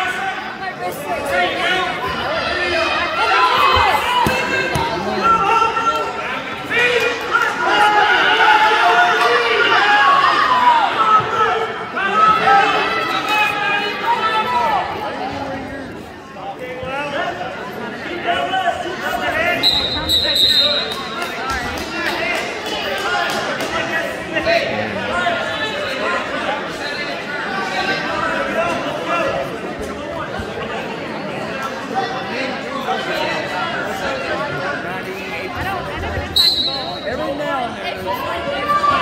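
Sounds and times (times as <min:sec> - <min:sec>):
spectators shouting: 0:00.0 - 0:14.8
spectators talking: 0:00.0 - 0:39.0
whistle: 0:19.6 - 0:20.9, 0:36.4 - 0:37.0.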